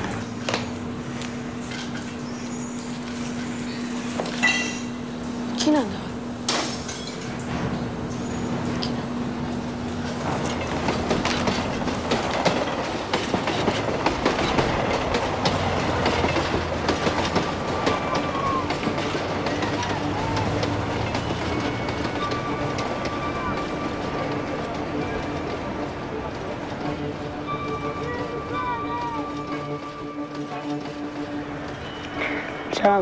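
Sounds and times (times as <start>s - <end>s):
train rumbling and rattling: 0.0s - 33.0s
wheel clicks clattering: 6.5s - 32.9s.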